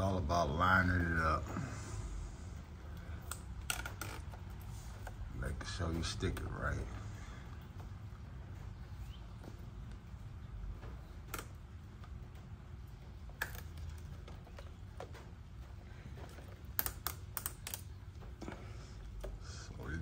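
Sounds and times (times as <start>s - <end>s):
low room hum: 0.0s - 20.0s.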